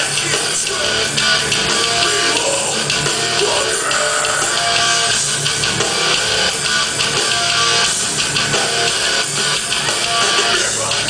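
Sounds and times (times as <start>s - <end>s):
drum kit: 0.0s - 11.0s
electric guitar: 0.0s - 11.0s
live hardcore band playing: 0.0s - 11.0s.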